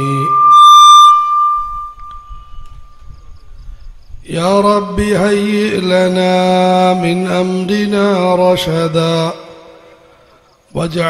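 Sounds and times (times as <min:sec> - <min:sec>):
microphone feedback whistle: 0:00.0 - 0:04.0, 0:06.2 - 0:07.8.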